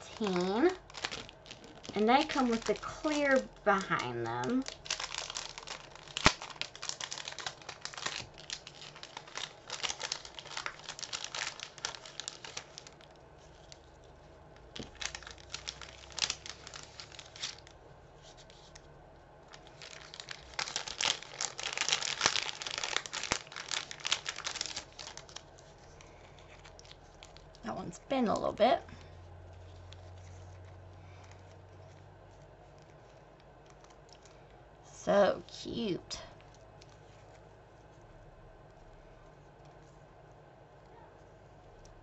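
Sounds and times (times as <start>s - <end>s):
plastic packet crinkling: 0.0s - 17.8s, 19.5s - 28.6s.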